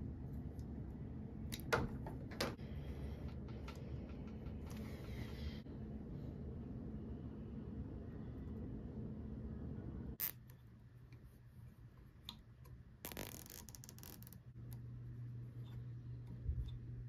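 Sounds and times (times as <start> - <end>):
zip tie ratcheting: 10.2 - 10.5, 13.0 - 14.5.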